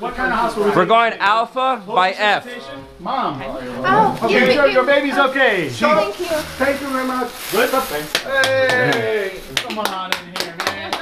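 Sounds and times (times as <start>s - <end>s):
hands clapping quickly: 8.1s - 11.0s.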